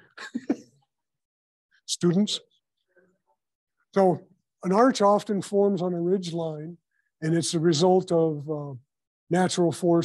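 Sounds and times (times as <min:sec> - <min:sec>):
man speaking: 0:01.9 - 0:02.6, 0:03.9 - 0:10.0.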